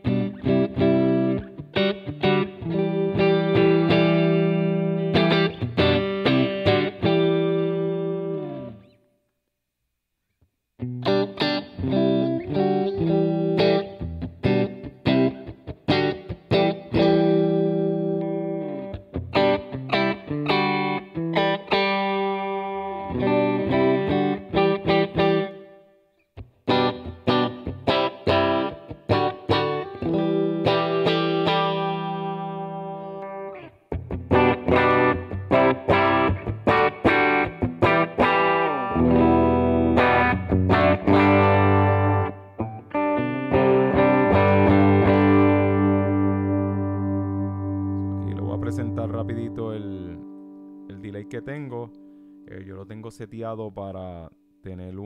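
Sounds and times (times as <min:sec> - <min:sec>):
clean electric guitar: 0:00.0 - 0:09.0, 0:10.8 - 0:55.0.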